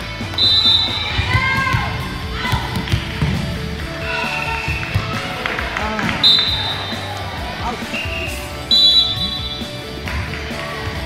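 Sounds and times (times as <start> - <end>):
chatter in a gym: 0.0 - 11.0
referee whistle blasts: 0.4 - 1.2, 6.2 - 7.1, 7.9 - 9.7.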